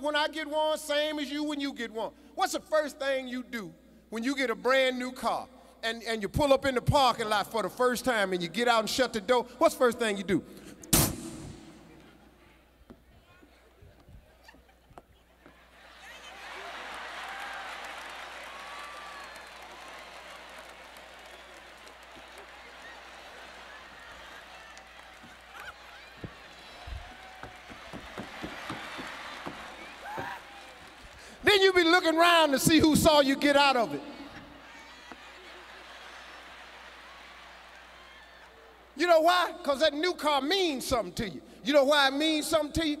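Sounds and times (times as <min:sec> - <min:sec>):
sharp thump over microphone: 0:10.9 - 0:11.7
footsteps on stage: 0:25.1 - 0:31.2
audience laughter and voices: 0:34.4 - 0:37.7.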